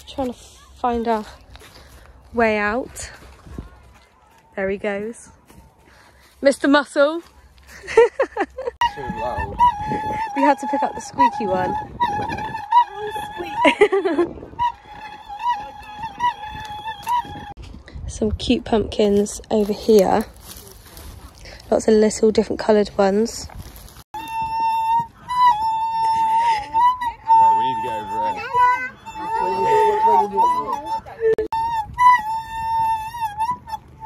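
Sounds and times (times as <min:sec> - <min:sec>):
wheelbarrow wheel squealing: 0:27.3 - 0:31.4.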